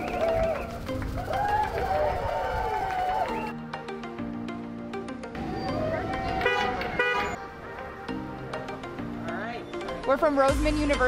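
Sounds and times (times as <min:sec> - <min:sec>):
car horn toots: 0:06.3 - 0:07.4.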